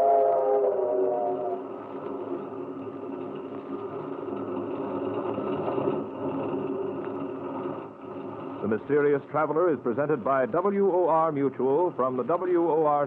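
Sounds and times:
held tone: 0:00.0 - 0:01.8
train wheels rumbling on track: 0:00.0 - 0:13.0.

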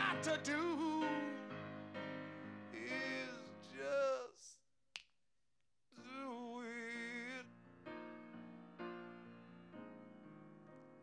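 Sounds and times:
man singing with vibrato: 0:00.0 - 0:01.5, 0:02.7 - 0:04.6, 0:06.0 - 0:07.5.

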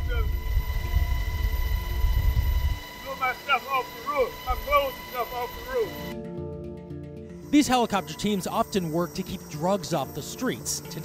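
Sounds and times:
helicopter cabin rumble: 0:00.0 - 0:06.1
high turbine whine: 0:00.0 - 0:06.2, 0:07.3 - 0:11.0.

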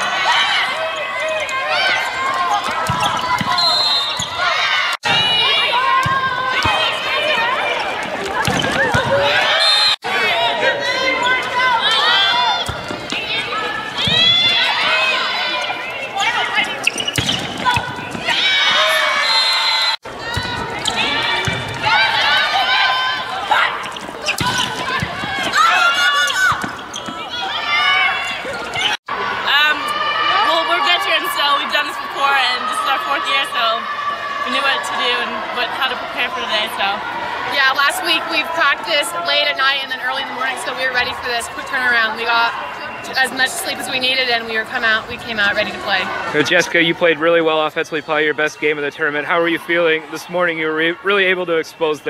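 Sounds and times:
players calling out: 0:00.0 - 0:52.0
sneakers squeaking on hardwood: 0:00.7 - 0:04.6, 0:06.1 - 0:09.7, 0:11.1 - 0:19.5, 0:23.4 - 0:29.0
shoes on hard court: 0:11.2 - 0:19.2.

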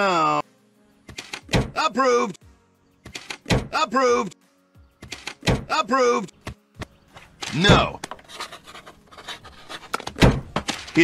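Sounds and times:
heavy thunk on desk: 0:10.1 - 0:10.9.

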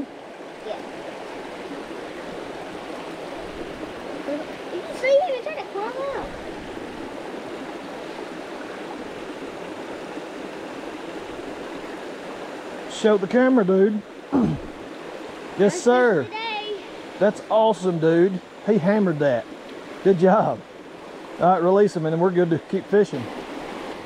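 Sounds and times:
creek running over stones: 0:00.0 - 0:24.0.

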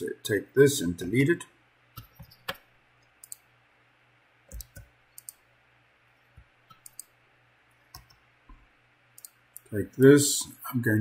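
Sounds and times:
computer mouse clicks: 0:01.9 - 0:03.5, 0:04.5 - 0:05.5, 0:06.3 - 0:07.2, 0:07.9 - 0:08.6, 0:09.2 - 0:09.7.

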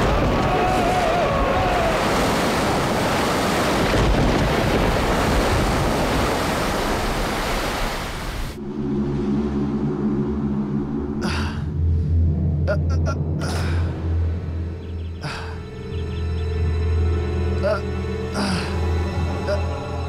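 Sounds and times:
low sustained drone: 0:08.6 - 0:20.0.

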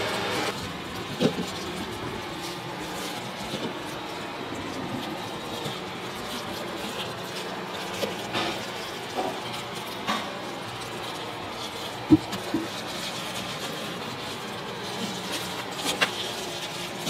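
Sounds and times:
kitchen background hum: 0:00.0 - 0:17.0.

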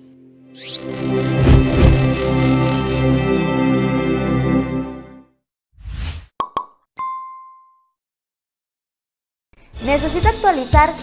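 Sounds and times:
keyboard music: 0:00.0 - 0:05.4
bright ringing ding: 0:07.0 - 0:07.9.

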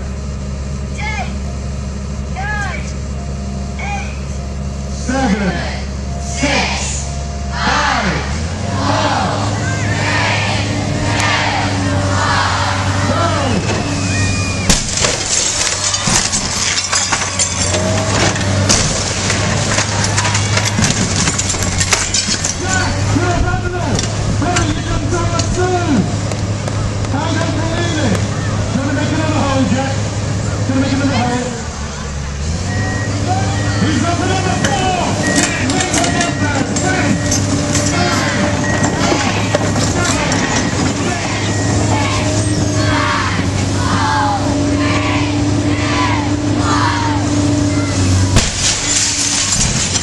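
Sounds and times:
diesel engine running: 0:00.0 - 0:50.0
crowd voices and shouts: 0:02.3 - 0:48.6
wood splintering and crashing: 0:14.7 - 0:23.4, 0:34.7 - 0:41.8, 0:48.3 - 0:50.0.

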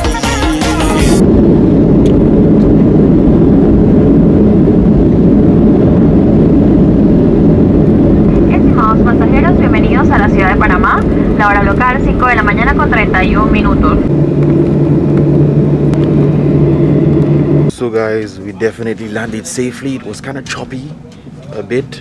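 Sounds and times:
plane rolling noise: 0:00.9 - 0:22.0
jet engines roaring: 0:01.0 - 0:22.0
voices: 0:08.3 - 0:14.1.

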